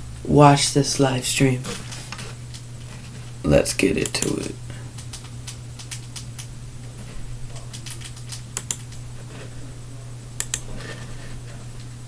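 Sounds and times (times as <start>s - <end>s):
low steady hum: 0.0s - 12.0s
keyboard clicks: 4.0s - 6.5s, 7.5s - 9.0s, 10.4s - 10.7s
computer mouse clicks: 7.6s - 9.0s, 10.4s - 10.7s.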